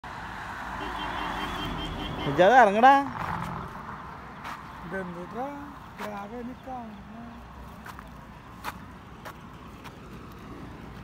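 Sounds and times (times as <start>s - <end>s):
passing vehicle on highway: 0.0s - 11.0s.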